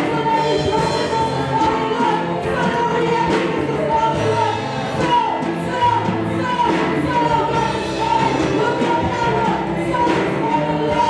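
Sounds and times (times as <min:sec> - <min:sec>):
backing singers: 0:00.0 - 0:11.0
live band with low bass: 0:00.0 - 0:11.0
woman singing lead: 0:00.0 - 0:11.0.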